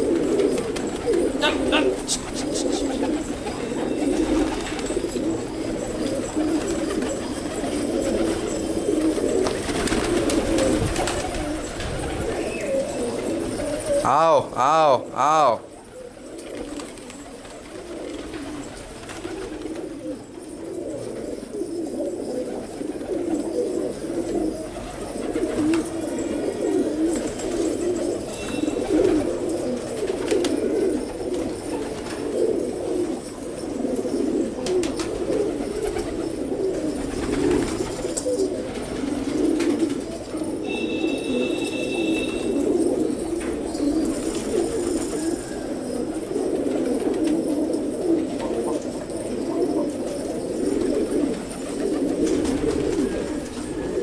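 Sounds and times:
pigeons cooing: 0.0 - 54.0
brief high tone: 40.6 - 42.6.

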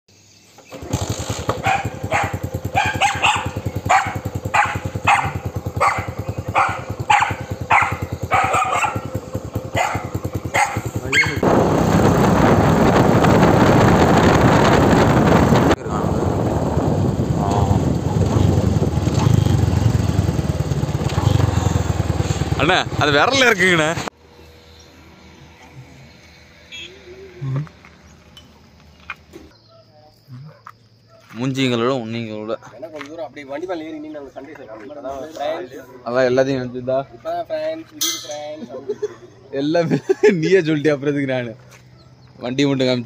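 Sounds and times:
motorcycle engine running: 0.7 - 24.1
dog barking: 1.5 - 11.4, 29.6 - 31.4, 35.8 - 36.2
loud rushing noise: 11.0 - 23.2.

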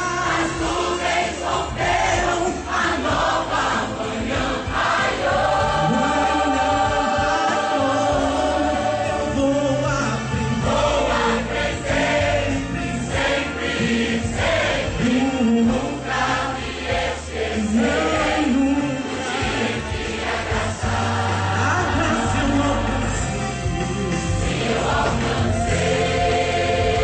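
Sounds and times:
choir singing gospel: 0.0 - 27.0
instrumental accompaniment with bass: 0.0 - 27.0.

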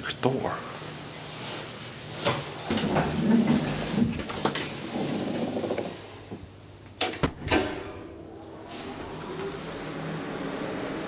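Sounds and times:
elevator rumbling: 2.6 - 6.2, 7.5 - 11.0.

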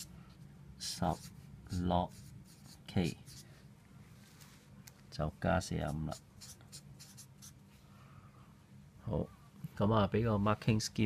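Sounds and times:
marker pen writing on paper: 2.1 - 3.4, 5.9 - 7.6.

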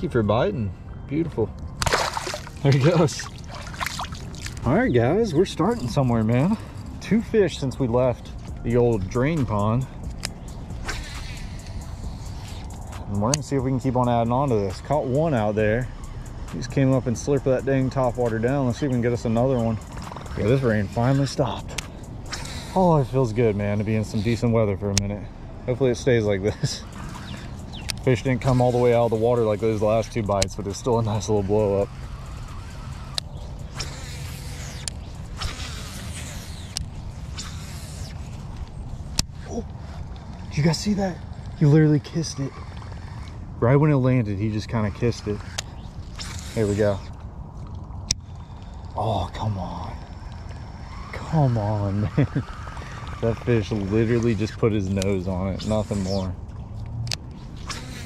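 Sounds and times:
steady low rumble: 0.0 - 58.0
fishing reel spool whirring: 1.8 - 58.0
reel clicks: 8.4 - 25.1, 26.5 - 43.4, 44.7 - 58.0
sharp click: 10.0 - 11.8, 27.0 - 28.1.

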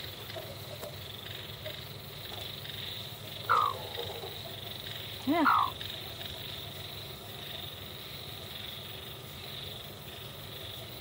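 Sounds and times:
high-pitched background drone: 3.4 - 4.4
hen call: 3.5 - 4.4, 5.2 - 5.8.

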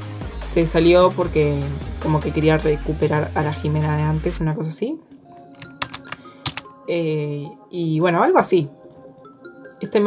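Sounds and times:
soft background music: 0.0 - 10.0
keyboard key clicks: 5.6 - 6.7.

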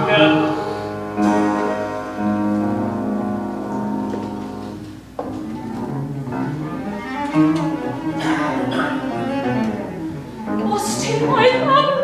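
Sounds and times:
bowed cello notes: 0.0 - 12.0
higher orchestral instruments: 0.0 - 12.0.

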